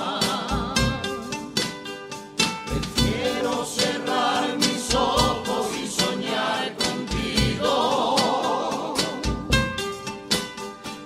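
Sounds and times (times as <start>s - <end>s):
group singing in chorus: 0.0s - 1.4s, 2.7s - 9.8s
instrumental accompaniment: 0.0s - 11.0s
low beat: 0.0s - 11.0s.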